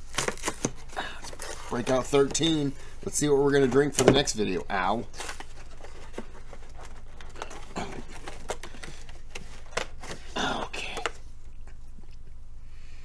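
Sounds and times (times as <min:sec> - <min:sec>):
hands rummaging through items: 0:00.0 - 0:11.2
rustling: 0:00.0 - 0:12.2
low steady hum: 0:00.0 - 0:13.0.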